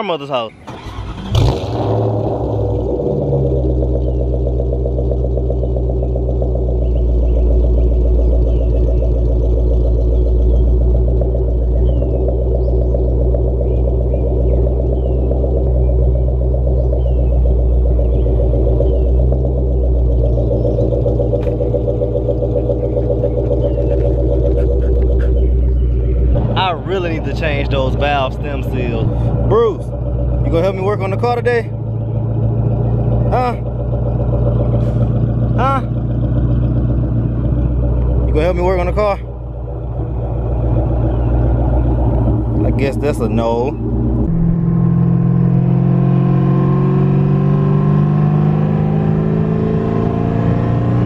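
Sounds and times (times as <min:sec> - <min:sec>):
car engine idling: 0:00.0 - 0:51.0.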